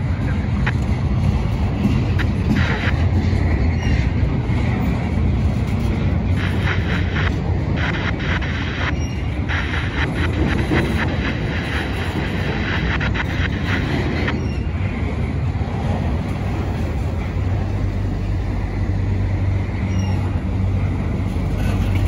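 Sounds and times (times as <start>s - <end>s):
steady low hum: 0.0s - 22.0s
steel wheels rumbling on rail: 0.0s - 22.0s.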